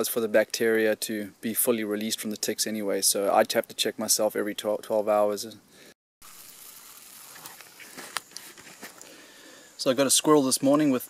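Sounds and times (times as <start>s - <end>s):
meat sizzling on coals: 6.2s - 9.6s.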